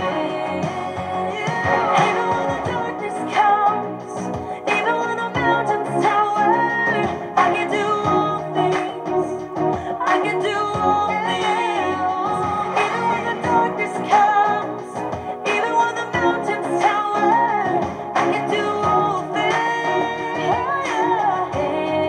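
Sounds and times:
woman singing pop-rock song: 0.0 - 22.0.

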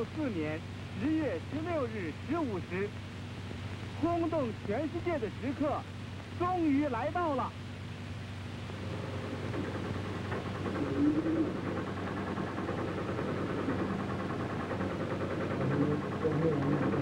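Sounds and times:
steady electrical hum: 0.0 - 17.0
muffled voices: 8.8 - 11.8, 15.4 - 17.0.

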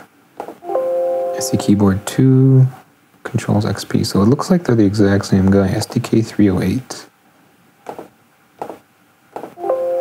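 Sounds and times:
computer system chime: 0.6 - 2.2, 9.6 - 10.0.

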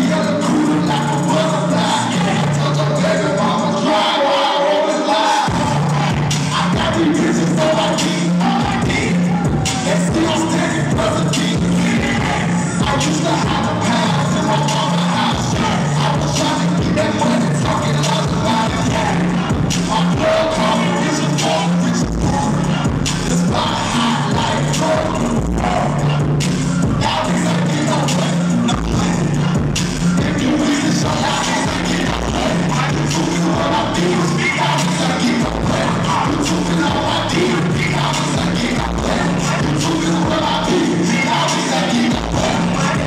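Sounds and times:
person rapping: 0.0 - 43.0
rap beat with heavy bass: 0.0 - 43.0.

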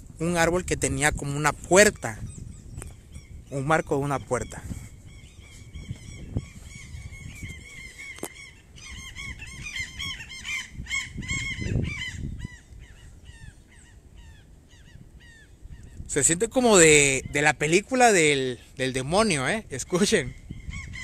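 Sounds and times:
flock of birds calling: 2.0 - 16.4, 19.9 - 21.0.

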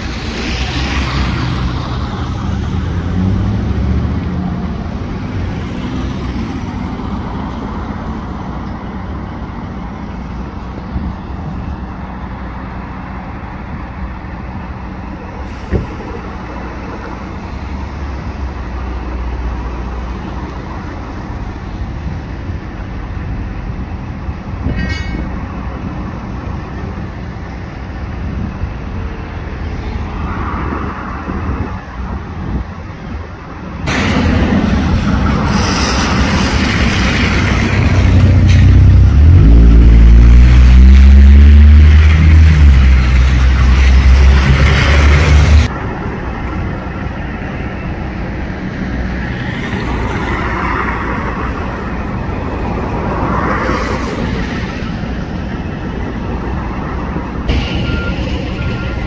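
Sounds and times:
vehicles passing: 0.0 - 59.0.

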